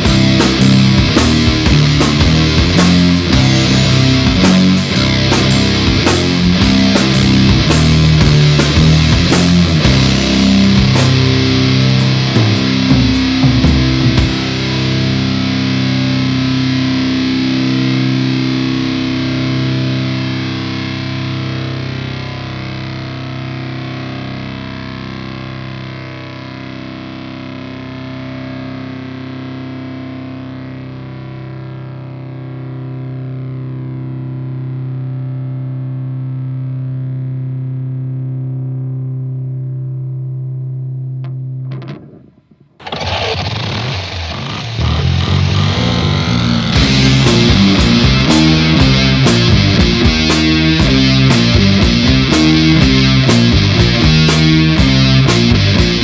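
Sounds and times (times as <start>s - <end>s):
metal song: 0.0s - 24.9s, 41.2s - 56.0s
distorted electric guitar drone: 0.0s - 56.0s.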